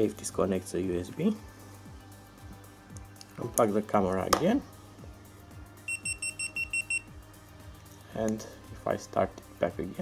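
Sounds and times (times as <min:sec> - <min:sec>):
quiet background music: 0:00.0 - 0:10.0
high electronic camera beeps: 0:05.9 - 0:07.1.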